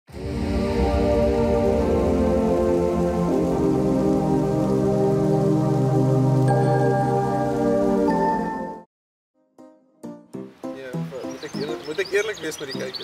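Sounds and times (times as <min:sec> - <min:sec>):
held synth chords: 0:00.1 - 0:08.9.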